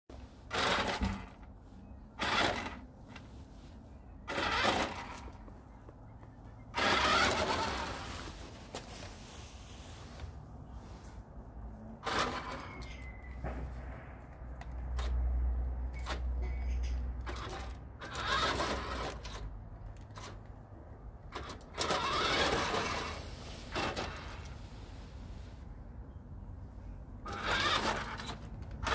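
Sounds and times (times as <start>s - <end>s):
tyres on stone paving: 0.1s - 28.9s
toy car electric motor whirring: 0.5s - 1.5s, 2.2s - 3.2s, 4.3s - 5.4s, 6.7s - 8.0s, 12.0s - 13.1s, 17.2s - 20.4s, 21.3s - 24.6s, 27.2s - 28.9s.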